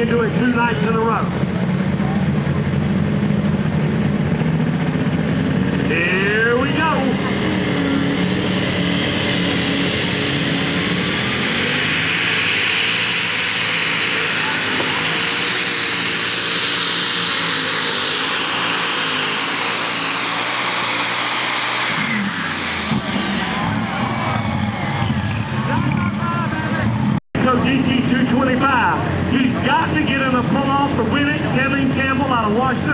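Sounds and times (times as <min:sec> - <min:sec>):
tractor engine whining: 0:00.0 - 0:32.9.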